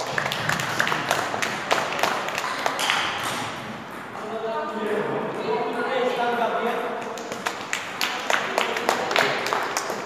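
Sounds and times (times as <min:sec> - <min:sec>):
people clapping: 0:00.0 - 0:03.4, 0:07.0 - 0:10.0.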